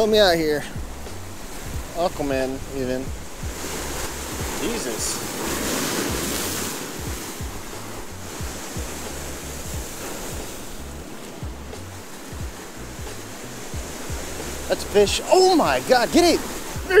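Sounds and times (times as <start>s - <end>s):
background music with bass beat: 0.0s - 17.0s
surf breaking over rocks: 0.0s - 17.0s.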